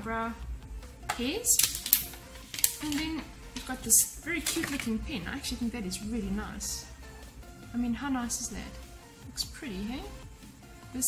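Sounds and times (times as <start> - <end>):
plastic packaging crackling: 1.5 - 3.8.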